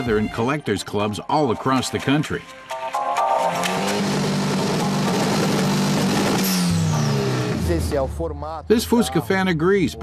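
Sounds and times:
car engine revving: 0:03.5 - 0:10.0.

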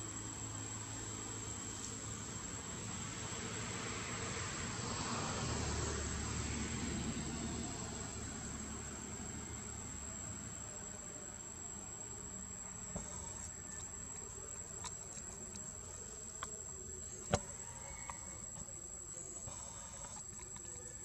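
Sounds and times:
outdoor noise rush: 0:00.0 - 0:21.0.

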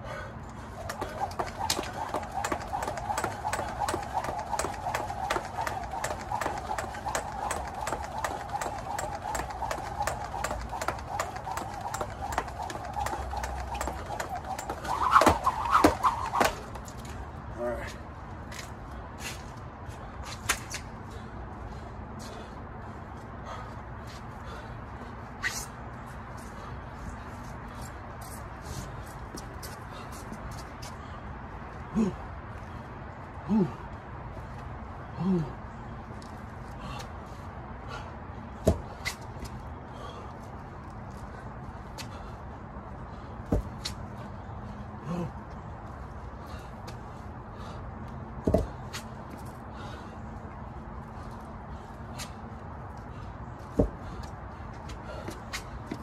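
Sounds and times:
jump rope whirring and slapping: 0:00.5 - 0:17.2, 0:20.2 - 0:21.0, 0:37.9 - 0:44.3, 0:46.5 - 0:50.1, 0:51.1 - 0:56.0
light foot landings: 0:00.6 - 0:17.2, 0:38.6 - 0:40.1, 0:48.4 - 0:49.9, 0:53.1 - 0:56.0.

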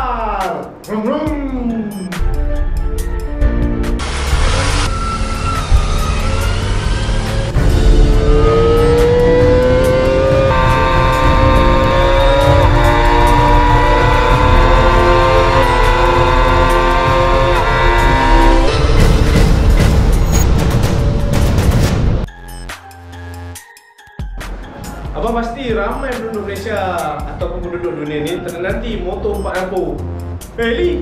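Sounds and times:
motorcycle engine revving high: 0:04.0 - 0:20.4.

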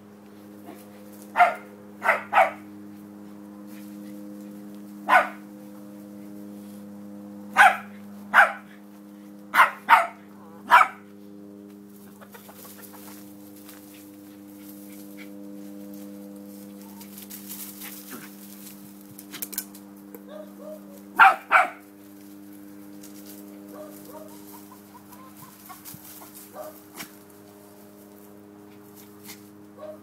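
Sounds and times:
steady low hum: 0:00.0 - 0:30.0
dog barking: 0:01.4 - 0:02.6, 0:05.1 - 0:05.4, 0:07.6 - 0:08.7, 0:09.5 - 0:11.0, 0:20.3 - 0:21.8, 0:23.7 - 0:24.4, 0:26.5 - 0:26.8, 0:29.8 - 0:30.0
chickens clucking: 0:12.0 - 0:13.8, 0:24.1 - 0:27.1.

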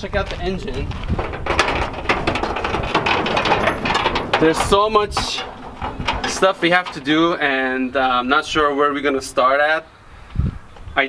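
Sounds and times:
metal hood latch clicking and rattling: 0:01.1 - 0:08.1.

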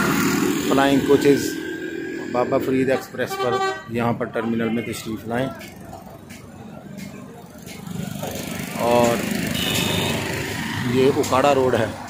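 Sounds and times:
traffic engine rumble: 0:00.0 - 0:12.0.

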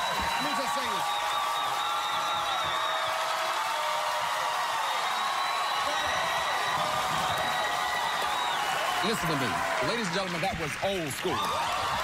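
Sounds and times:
audience cheering: 0:00.0 - 0:12.0
audience clapping: 0:00.0 - 0:12.0.

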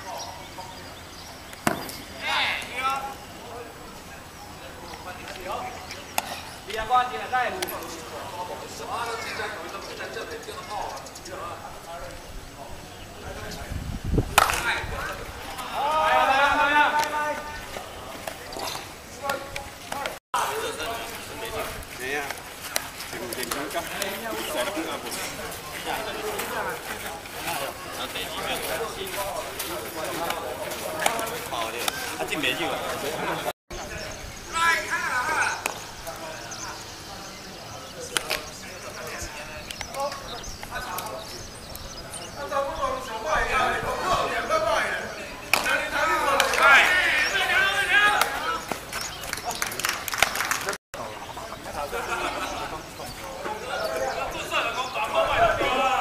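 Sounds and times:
faint voices: 0:00.0 - 0:56.0
bat cracking against ball: 0:14.3 - 0:14.7, 0:45.5 - 0:45.7.

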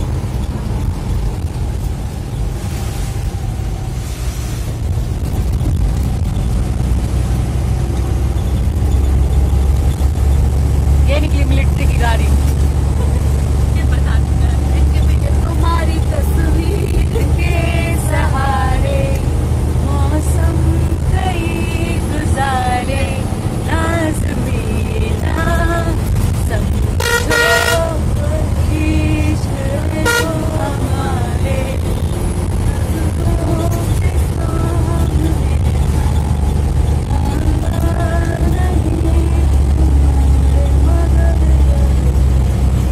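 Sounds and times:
bus engine and road noise: 0:00.0 - 0:42.9
bus horn: 0:26.9 - 0:28.2, 0:29.8 - 0:30.8.

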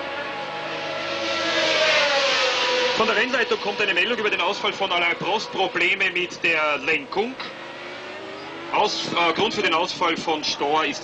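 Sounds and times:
racing car engines at high revs: 0:00.0 - 0:11.0.

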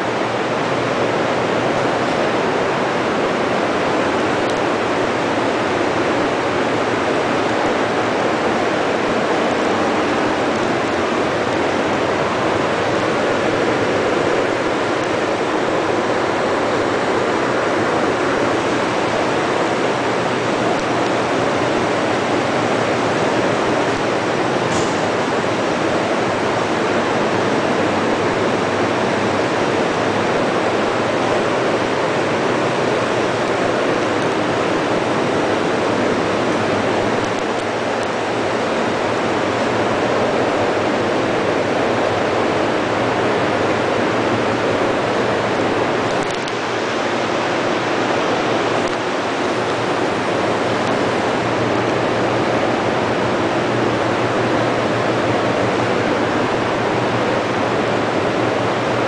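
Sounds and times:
factory machinery running: 0:00.0 - 0:59.0.

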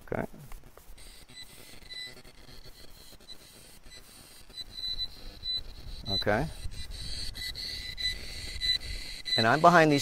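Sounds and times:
high thin steady whine: 0:00.0 - 0:10.0.

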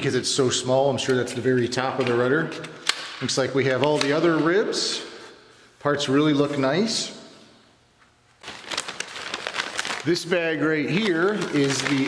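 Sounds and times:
paper bag crinkling: 0:08.4 - 0:12.0.

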